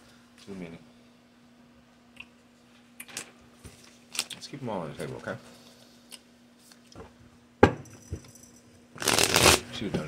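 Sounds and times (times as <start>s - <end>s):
riffle shuffle of cards: 9.0s - 9.6s.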